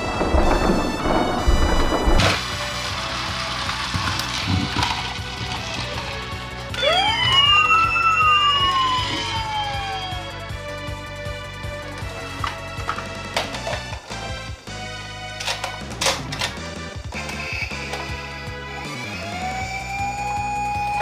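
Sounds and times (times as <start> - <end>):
toy motorcycle rolling on wooden ramp: 0.0 - 7.5
background music: 0.0 - 21.0
electronic siren wailing: 6.7 - 10.6, 18.8 - 21.0.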